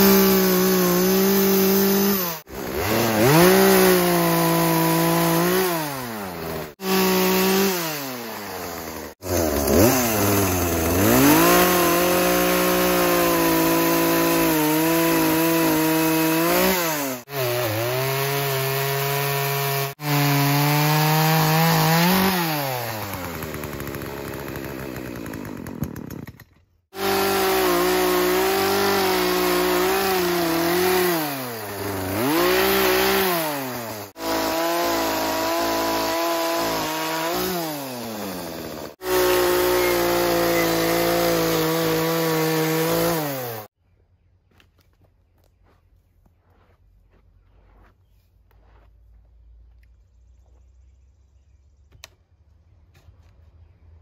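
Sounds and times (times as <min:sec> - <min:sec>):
chainsaw cutting wood: 0:00.0 - 0:43.8.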